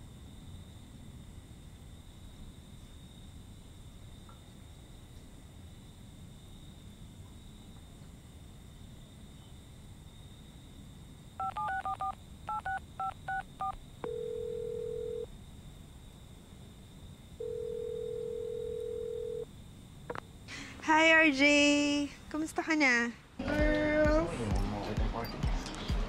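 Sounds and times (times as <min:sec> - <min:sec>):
touch-tone keypad beeps: 0:11.4 - 0:13.8
phone ringing tone: 0:11.4 - 0:15.3, 0:17.4 - 0:19.4.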